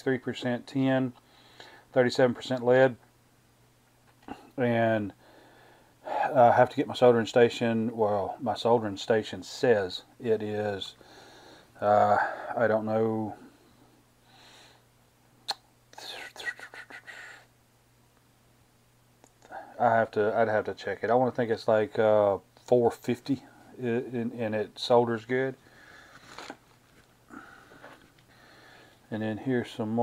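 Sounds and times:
faint low hum: 0:00.0 - 0:30.0
whispered muttering: 0:16.0 - 0:17.5.

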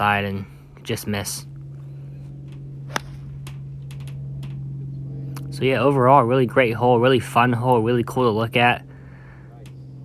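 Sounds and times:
golf club striking ball: 0:02.4 - 0:04.7.

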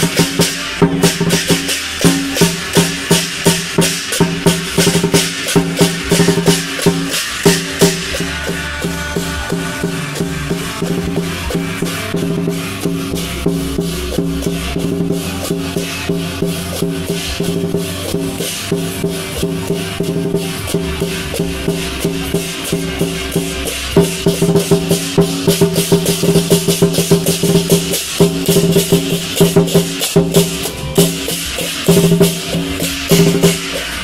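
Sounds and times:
drum and cymbal strokes: 0:00.0 - 0:34.0.

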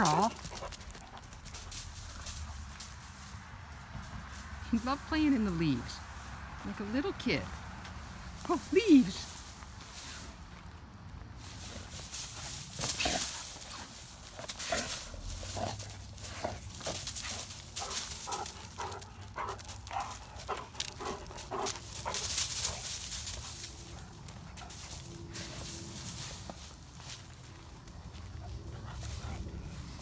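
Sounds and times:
dry leaves crunching: 0:00.0 - 0:30.0.

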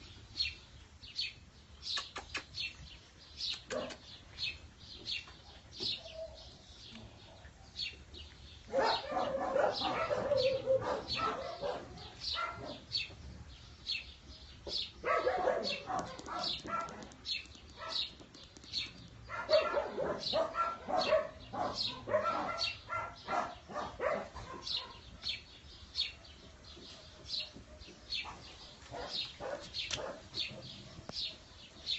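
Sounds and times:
small birds chirping: 0:00.0 - 0:31.9
dogs barking: 0:03.7 - 0:04.0, 0:08.6 - 0:13.1, 0:15.0 - 0:17.2, 0:17.8 - 0:18.2, 0:19.2 - 0:25.4, 0:26.0 - 0:31.9.

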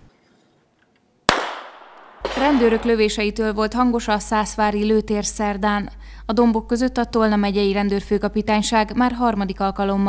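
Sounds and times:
pistol shot: 0:01.3 - 0:03.0.

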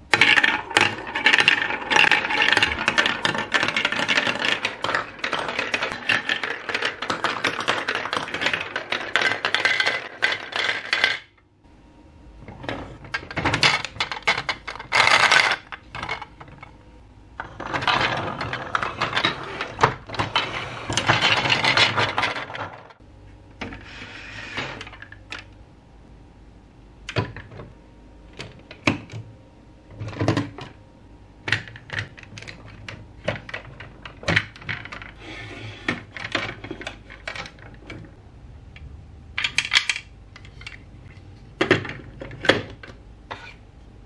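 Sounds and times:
balls rattling in plastic bucket: 0:00.1 - 0:11.3, 0:12.6 - 0:16.7, 0:17.4 - 0:23.0, 0:31.5 - 0:35.2
plastic balls clattering down marble run: 0:00.1 - 0:11.4, 0:12.6 - 0:16.7, 0:17.4 - 0:23.0, 0:31.5 - 0:38.1.

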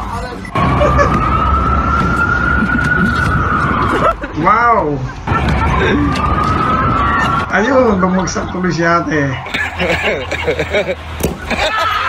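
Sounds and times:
loud street noise: 0:00.0 - 0:12.0
siren wailing: 0:00.5 - 0:10.0.

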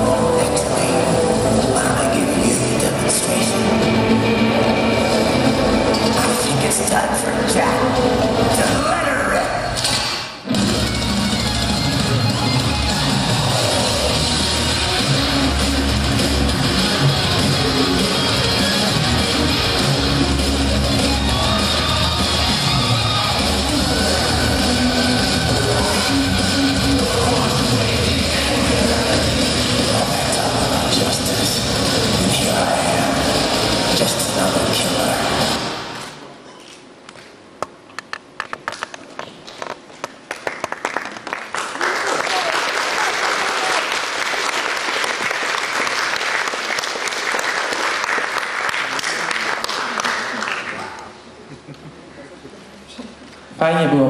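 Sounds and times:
rock music over speakers: 0:00.0 - 0:36.0
audience applause: 0:12.0 - 0:15.2, 0:16.4 - 0:35.1, 0:39.5 - 0:51.2.

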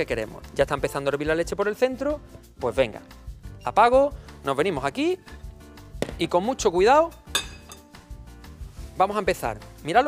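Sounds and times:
quiet background music: 0:00.0 - 0:10.0
metallic clink of cookware: 0:07.3 - 0:07.9.

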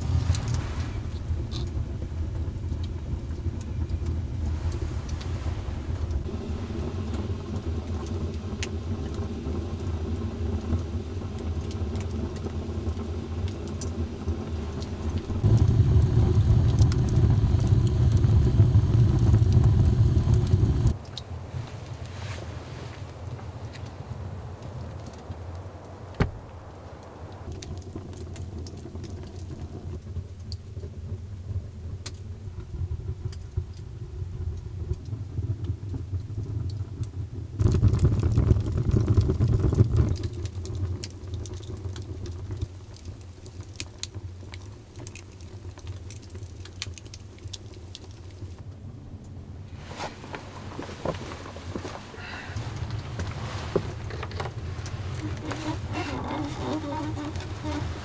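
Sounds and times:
fire low rumble: 0:00.0 - 0:58.0
wood fire crackling and popping: 0:00.0 - 0:58.0.

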